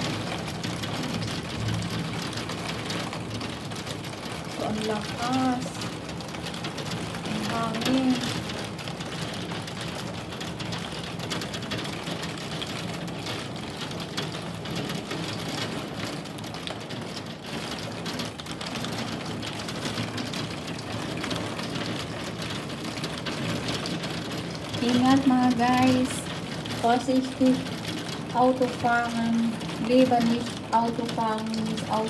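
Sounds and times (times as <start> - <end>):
heavy rain on a window: 0.0 - 32.0.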